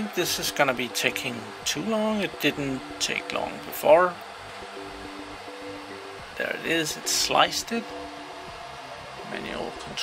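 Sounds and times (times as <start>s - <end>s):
low two-tone hum: 0.0s - 10.0s
small cooling fan running: 0.0s - 10.0s.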